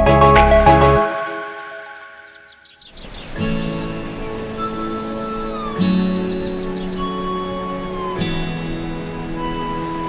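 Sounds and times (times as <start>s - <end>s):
high bird chirps: 0.9s - 8.6s.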